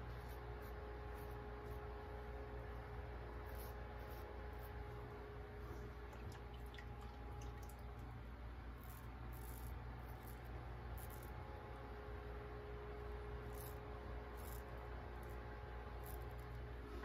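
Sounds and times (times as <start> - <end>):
razor scraping stubble: 0.0 - 2.3, 3.2 - 5.1, 8.7 - 11.4, 13.3 - 16.7
low electrical hum: 0.0 - 17.0.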